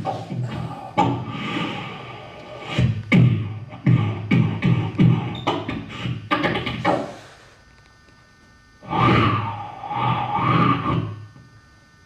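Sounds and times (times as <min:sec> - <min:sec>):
beatboxer imitating an engine: 0:00.0 - 0:07.5, 0:08.8 - 0:11.4.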